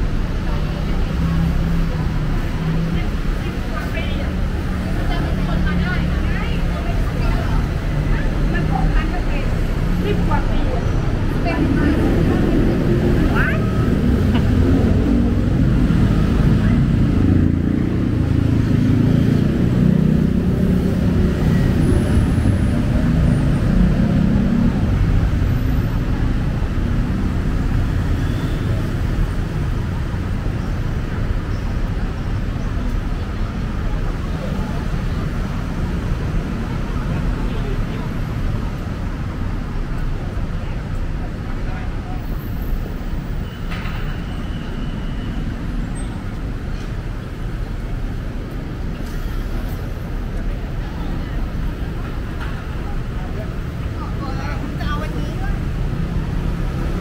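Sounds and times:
passers-by voices: 0.0 - 57.0
street traffic rumbling: 0.0 - 57.0.

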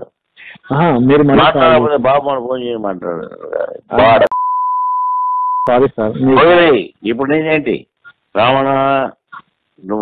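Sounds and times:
man speaking on phone call: 0.0 - 4.4, 5.6 - 10.0
high-pitched censor bleep: 4.3 - 5.7.

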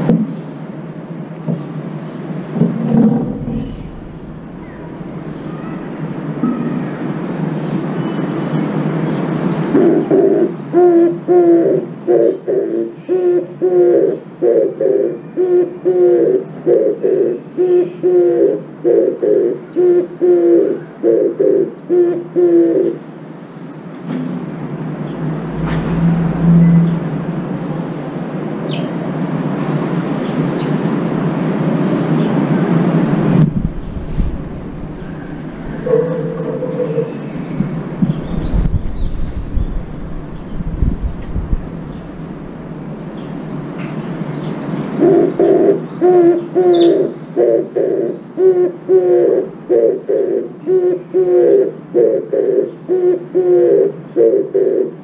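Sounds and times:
steady rushing noise: 0.8 - 11.2, 23.6 - 45.9
low rumbles: 2.4 - 7.4, 24.3 - 29.6, 32.8 - 44.4
dove cooing: 2.9 - 8.0, 9.6 - 23.0, 32.5 - 40.5, 44.9 - 55.0.

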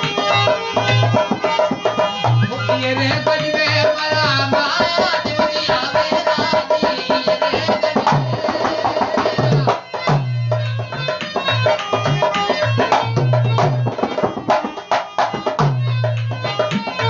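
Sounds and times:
dholak folk rhythm: 0.0 - 17.0
harmonium chords: 0.0 - 17.0.

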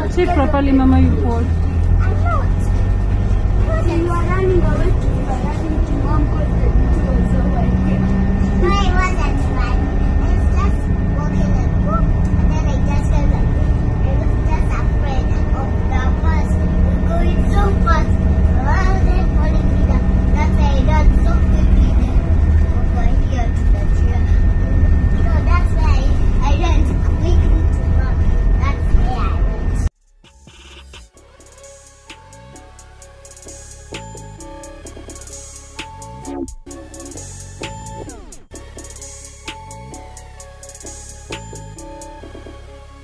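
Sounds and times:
children talking: 0.0 - 29.9
engine and road rumble: 0.0 - 43.0.

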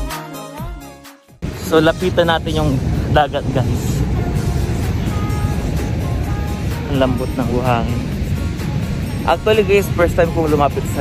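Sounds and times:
soft background music: 0.0 - 11.0
wind buffeting microphone: 1.4 - 11.0.

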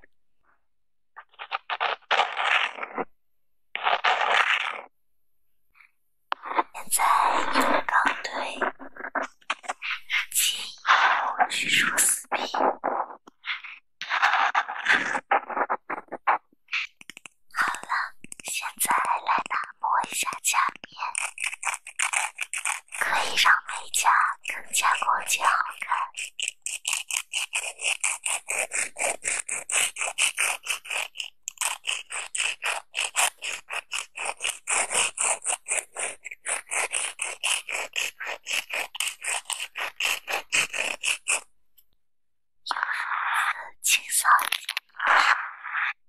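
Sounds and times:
foam buffer block rubbing: 1.2 - 3.1, 21.1 - 23.0, 26.2 - 41.5
nail file scraping: 1.2 - 3.1, 3.8 - 4.9, 6.3 - 41.5, 42.7 - 46.0.

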